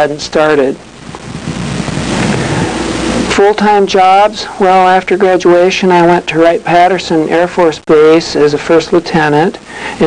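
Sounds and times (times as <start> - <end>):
speech: 0.0 - 0.8, 3.3 - 9.6
recording hiss: 0.0 - 10.0.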